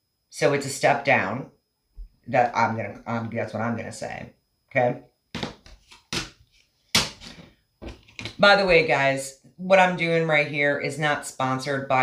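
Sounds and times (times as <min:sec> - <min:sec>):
sharp knocks on a tabletop: 0:05.3 - 0:06.4, 0:07.0 - 0:08.4.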